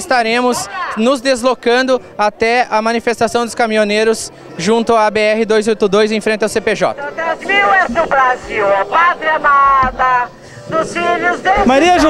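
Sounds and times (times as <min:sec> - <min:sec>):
woman shouting into megaphone: 0:00.6 - 0:01.0.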